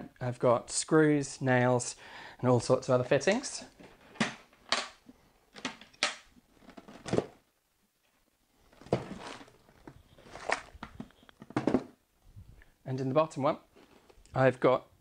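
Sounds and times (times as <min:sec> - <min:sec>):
wooden boxes knocking together: 0:10.3 - 0:12.0.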